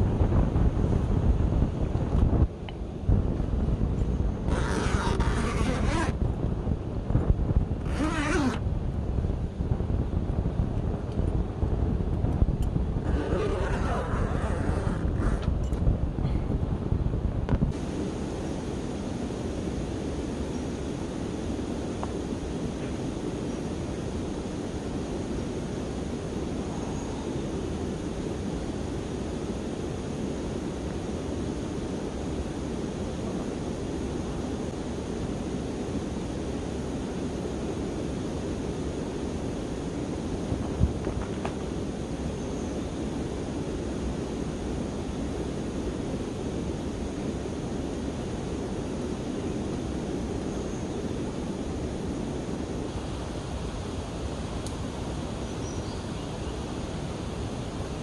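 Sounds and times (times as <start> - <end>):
steady outdoor rushing noise: 0.0 - 58.0.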